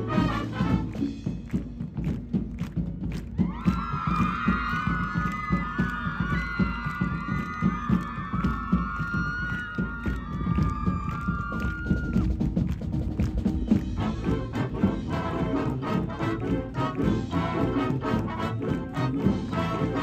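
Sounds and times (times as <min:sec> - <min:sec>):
marching band drums: 0:00.0 - 0:20.0
high voices shouting and cheering: 0:03.4 - 0:12.4.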